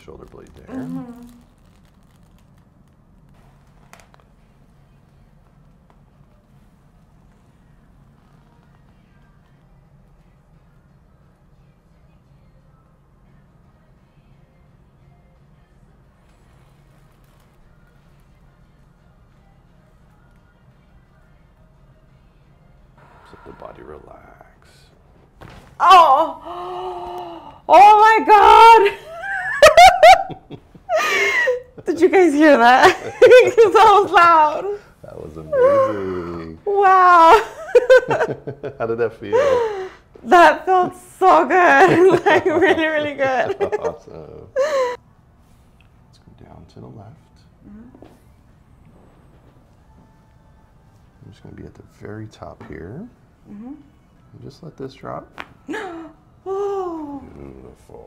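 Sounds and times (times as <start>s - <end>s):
steady low hum: 0.0s - 58.0s
woman crying out and moaning: 25.8s - 29.1s, 35.5s - 37.7s, 41.7s - 45.0s, 55.7s - 57.4s
woman laughing: 28.4s - 34.0s, 37.0s - 40.0s, 40.7s - 45.0s, 55.7s - 57.2s.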